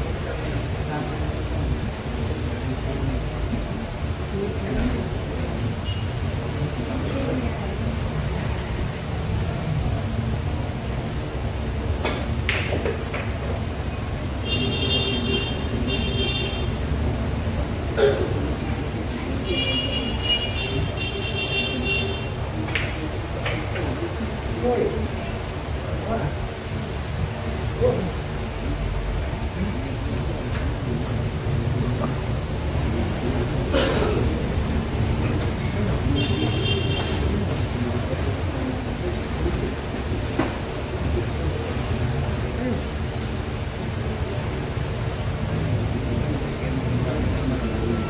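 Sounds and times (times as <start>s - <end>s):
faint murmuring of onlookers: 0.0s - 48.0s
low traffic rumble: 0.0s - 48.0s.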